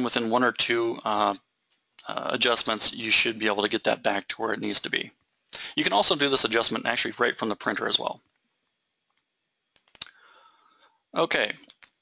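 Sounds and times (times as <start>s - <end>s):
faint low noise: 0.0s - 12.0s
computer mouse clicks: 9.1s - 10.2s.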